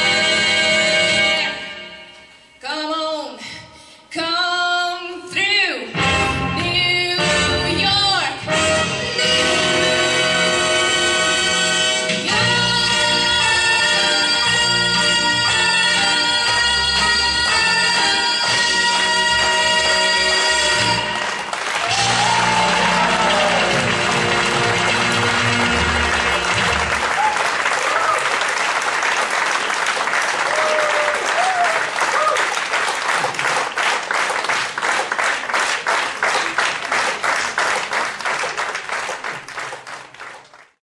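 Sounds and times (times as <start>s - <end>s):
backing music: 0.0s - 2.4s, 5.9s - 27.2s
rhythmic clapping in time: 14.3s - 40.8s
audience applauding: 17.4s - 40.8s.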